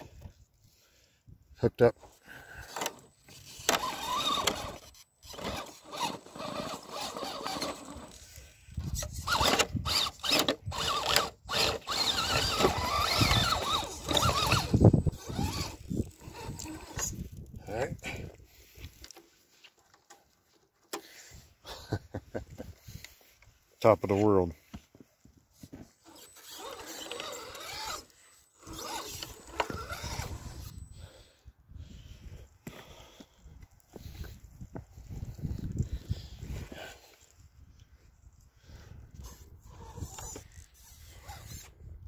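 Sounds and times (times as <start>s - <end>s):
electric motor and gearbox whining: 2.3s - 19.3s, 25.7s - 31.3s, 39.2s - 41.8s.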